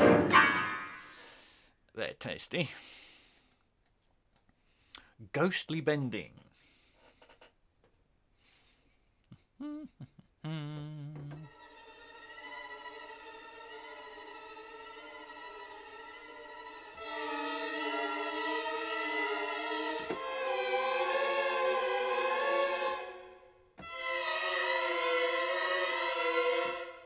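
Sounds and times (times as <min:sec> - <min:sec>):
string ensemble sustained chords: 0:11.5 - 0:27.0.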